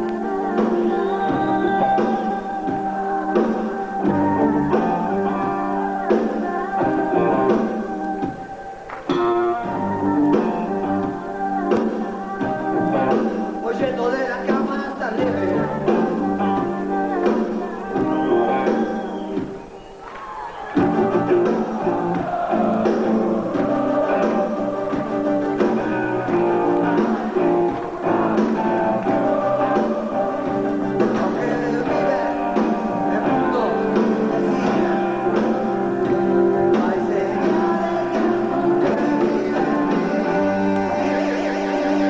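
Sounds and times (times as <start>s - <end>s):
live rock band playing: 0.0s - 20.0s, 20.7s - 42.0s.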